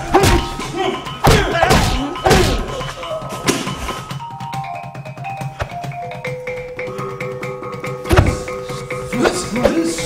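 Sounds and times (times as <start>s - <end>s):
background music: 0.0s - 10.0s
heavy thumps: 8.0s - 8.6s.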